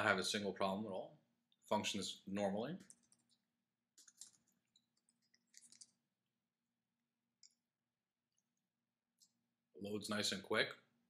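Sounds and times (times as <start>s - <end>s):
faint keyboard clicks: 2.8s - 3.4s, 4.0s - 6.0s.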